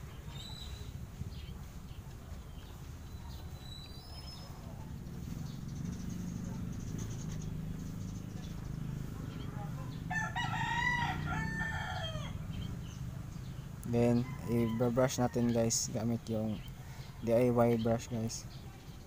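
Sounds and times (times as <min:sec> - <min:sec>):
rooster crowing: 0:10.1 - 0:12.4, 0:14.0 - 0:15.8.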